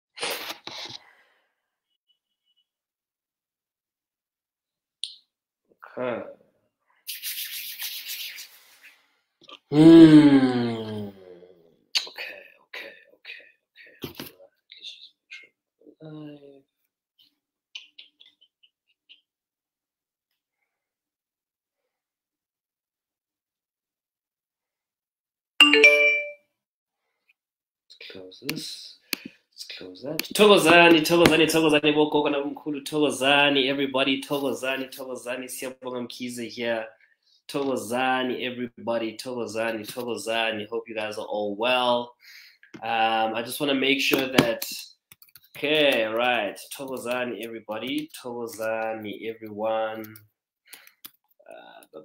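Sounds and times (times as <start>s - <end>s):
bell-like chime: 25.6s - 26.4s
man speaking: 29.6s - 36.9s, 42.8s - 45.0s, 45.6s - 50.2s.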